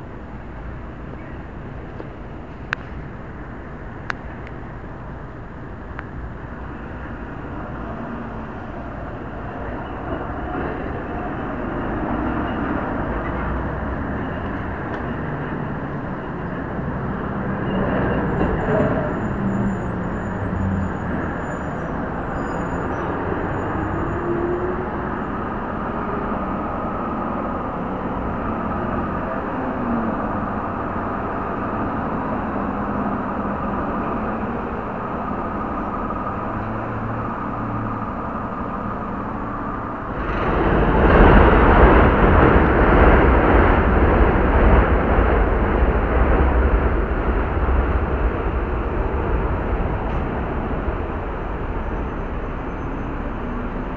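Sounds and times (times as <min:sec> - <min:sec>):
street traffic rumble: 0:00.0 - 0:53.9.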